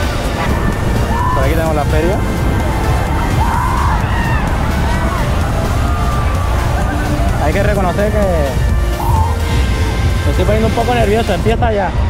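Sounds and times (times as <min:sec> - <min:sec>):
distant voices: 0:00.0 - 0:12.0
faint music: 0:00.0 - 0:12.0
wind rumbling on microphone: 0:00.0 - 0:12.0.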